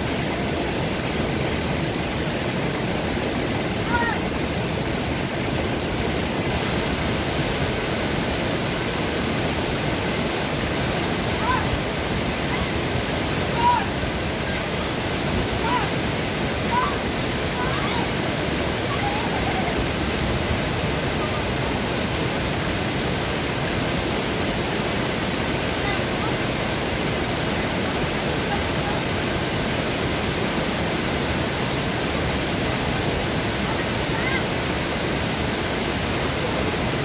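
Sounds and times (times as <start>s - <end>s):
waterfall rushing: 0.0s - 37.0s.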